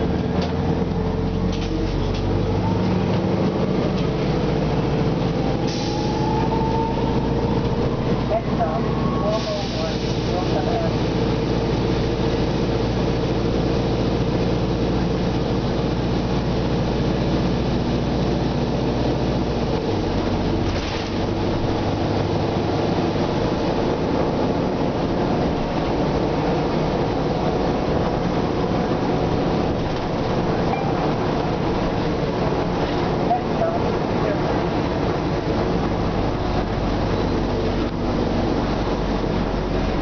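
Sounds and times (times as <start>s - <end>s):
bus diesel engine droning: 0.0s - 40.0s.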